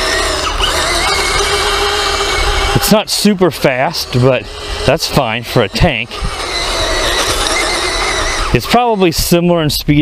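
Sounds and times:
tracks rattling on gravel: 0:00.0 - 0:09.5
electric motor whine: 0:00.0 - 0:09.8.

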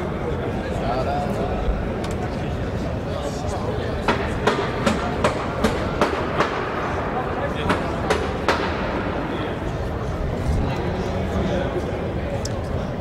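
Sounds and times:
voices in room: 0:00.0 - 0:13.0.

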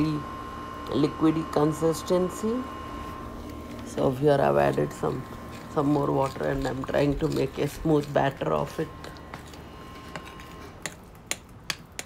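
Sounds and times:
spoon stirring thick batter: 0:03.4 - 0:12.0.

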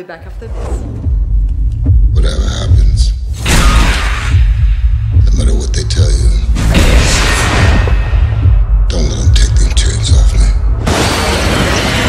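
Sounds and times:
deep steady rumble: 0:00.2 - 0:10.8.

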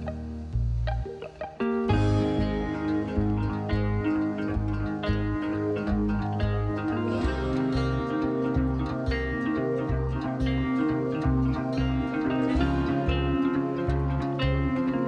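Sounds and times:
plucked string music with bass: 0:00.0 - 0:15.0.

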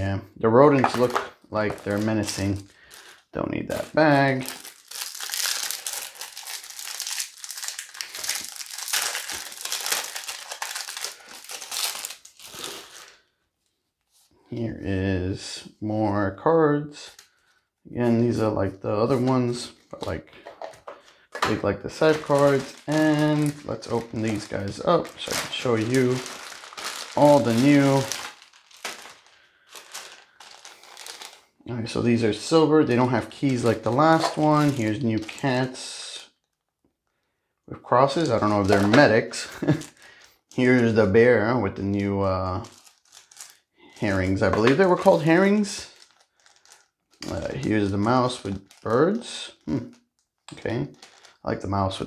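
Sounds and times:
plastic wrapping crinkling: 0:00.8 - 0:13.2, 0:19.1 - 0:31.5, 0:32.1 - 0:35.8, 0:38.1 - 0:41.3, 0:41.9 - 0:51.4.

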